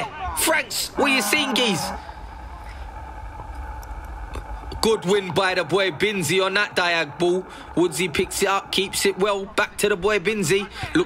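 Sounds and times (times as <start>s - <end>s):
faint steady hum: 0.0s - 11.0s
low outdoor rumble: 0.0s - 11.0s.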